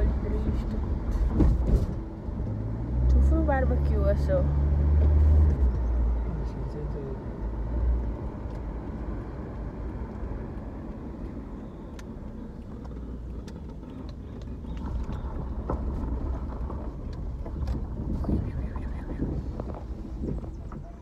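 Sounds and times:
car engine and tyre rumble: 0:00.0 - 0:21.0.

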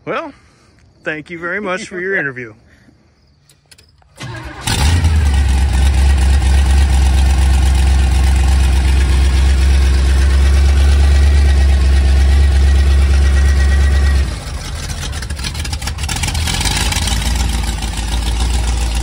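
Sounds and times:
car engine starting and idling: 0:03.7 - 0:19.0.

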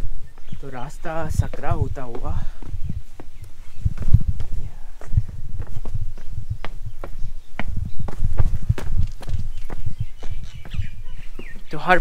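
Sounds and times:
footsteps on stone trail: 0:00.0 - 0:12.0.

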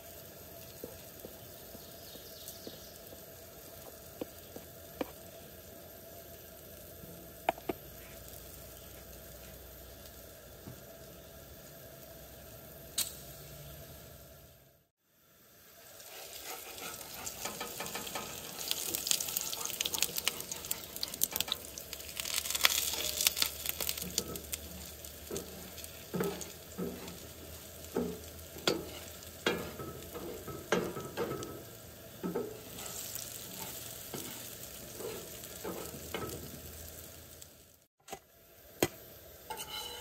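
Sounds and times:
batter and bacon sizzling: 0:00.0 - 0:40.0
spatula tapping a pan: 0:07.4 - 0:07.8, 0:28.0 - 0:31.6
metal spatula scraping a pan: 0:16.0 - 0:31.6, 0:32.2 - 0:36.5, 0:39.4 - 0:40.0.

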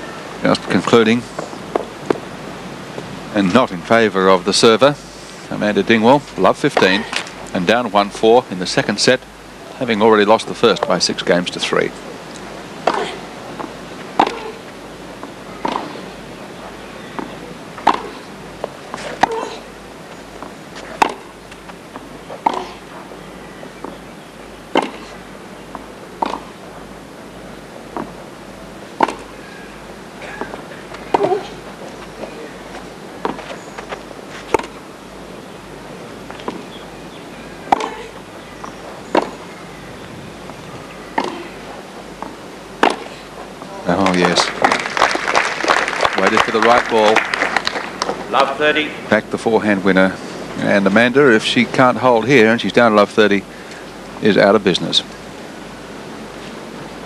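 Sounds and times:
steady background noise: 0:00.0 - 0:57.0
tennis ball hit by racquets: 0:12.8 - 0:14.6, 0:15.2 - 0:16.2, 0:17.1 - 0:19.6, 0:20.7 - 0:22.9, 0:24.7 - 0:26.6, 0:29.0 - 0:29.4, 0:30.4 - 0:34.8, 0:36.3 - 0:36.9, 0:37.6 - 0:38.2, 0:39.1 - 0:39.5, 0:41.1 - 0:43.4.

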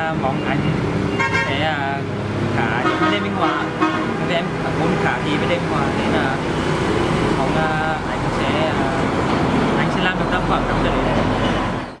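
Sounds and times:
voices talking: 0:00.0 - 0:00.8
street traffic rumble: 0:00.0 - 0:12.0.

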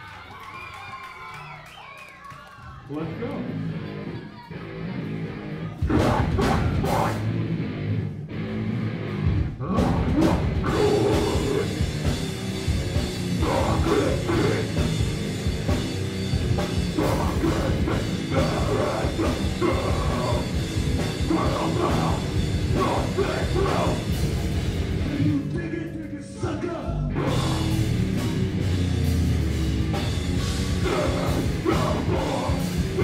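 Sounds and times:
live heavy rock band: 0:03.1 - 0:33.0.

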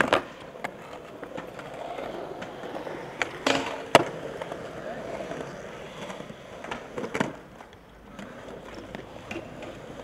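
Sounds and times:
skateboard striking with sharp clack: 0:00.0 - 0:10.0
skateboard wheels rolling on concrete: 0:00.0 - 0:10.0.

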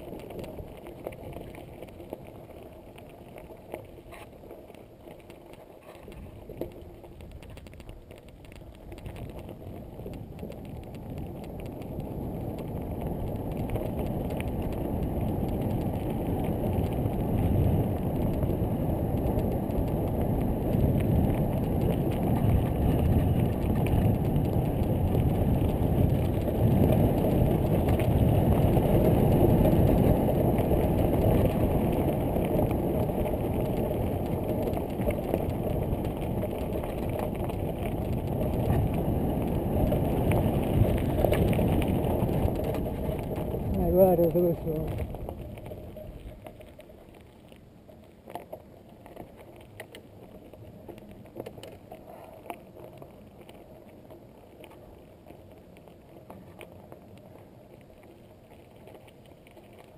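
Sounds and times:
bike rattling over bumps: 0:00.0 - 0:47.0
wind rumble on microphone: 0:00.0 - 0:59.9.

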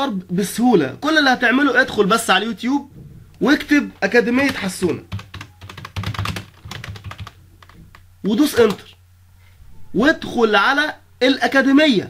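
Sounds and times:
keyboard typing: 0:04.0 - 0:09.0.

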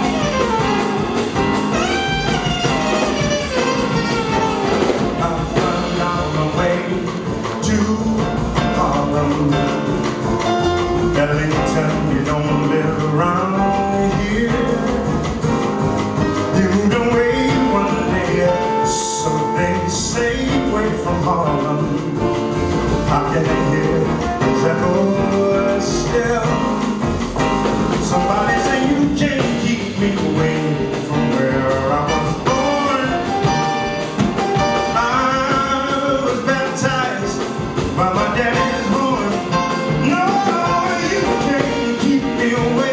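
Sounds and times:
drums: 0:00.0 - 0:42.9
jazz band playing: 0:00.0 - 0:42.9
piano: 0:00.0 - 0:42.9
upright double bass plucked: 0:00.0 - 0:42.9
man singing: 0:01.7 - 0:15.5, 0:16.2 - 0:42.9.

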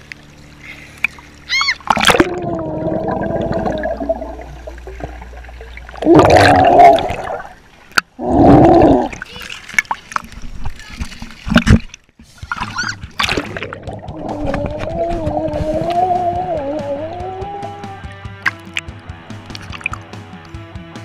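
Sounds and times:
splashing: 0:00.8 - 0:20.1
bubbling water: 0:01.8 - 0:09.4, 0:13.2 - 0:17.9
muffled child's voice underwater: 0:08.8 - 0:11.4, 0:14.2 - 0:18.0.

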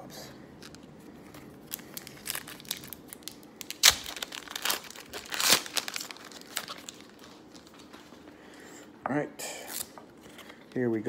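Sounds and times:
wrapper ripping: 0:00.6 - 0:08.0
wrapper crinkling: 0:00.6 - 0:08.3.

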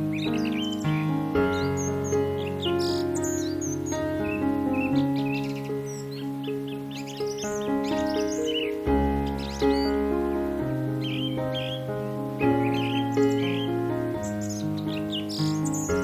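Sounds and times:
slow held chords: 0:00.0 - 0:16.0.

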